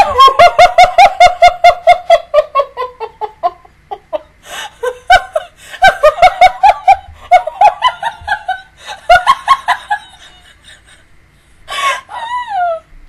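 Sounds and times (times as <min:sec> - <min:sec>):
woman laughing hard: 0:00.0 - 0:11.1, 0:11.7 - 0:12.9.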